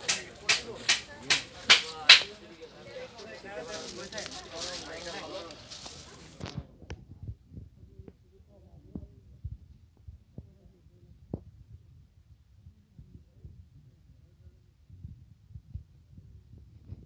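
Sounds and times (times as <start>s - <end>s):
faint voices: 0.0s - 11.8s.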